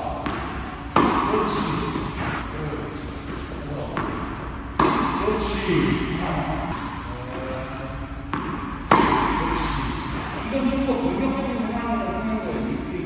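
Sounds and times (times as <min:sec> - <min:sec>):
racket striking ball: 0:00.2 - 0:02.4, 0:03.2 - 0:05.6, 0:08.3 - 0:10.3
tennis ball bouncing on court: 0:00.2 - 0:02.4, 0:03.3 - 0:05.2, 0:08.3 - 0:09.6.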